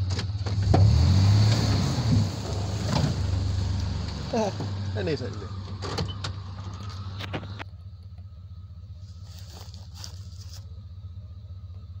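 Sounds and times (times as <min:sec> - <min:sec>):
pickup engine idling: 0:02.1 - 0:12.0
sharp clicks and knocks: 0:05.6 - 0:07.7.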